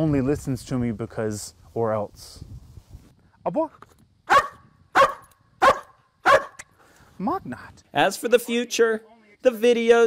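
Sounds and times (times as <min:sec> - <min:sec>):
dog barking: 0:04.3 - 0:06.6.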